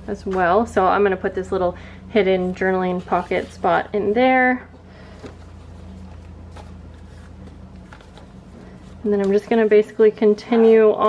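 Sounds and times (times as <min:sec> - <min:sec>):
low hum: 0:00.0 - 0:11.0
paper pages turning: 0:03.0 - 0:03.8, 0:05.1 - 0:09.6.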